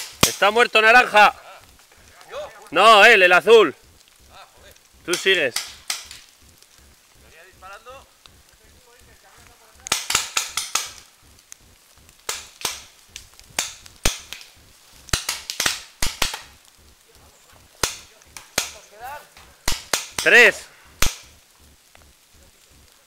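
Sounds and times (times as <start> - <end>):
paintball markers firing: 15.1 - 16.5.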